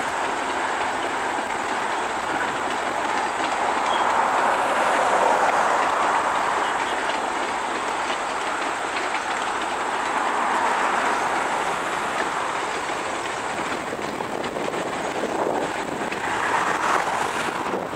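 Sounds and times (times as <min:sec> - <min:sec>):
clicking over rail joints: 0:00.0 - 0:17.9
train wheels rumbling on rails: 0:00.0 - 0:17.9.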